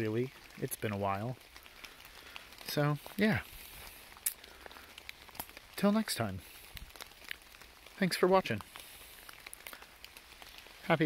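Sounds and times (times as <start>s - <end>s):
faint rain hiss: 0.0s - 11.0s
raindrops ticking: 0.0s - 11.0s
man speaking: 2.7s - 3.5s.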